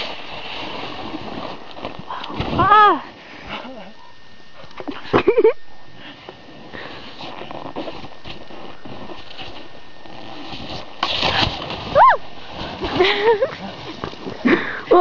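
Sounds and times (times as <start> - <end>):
snowboard scraping snow: 0.0 - 2.6, 6.2 - 14.6.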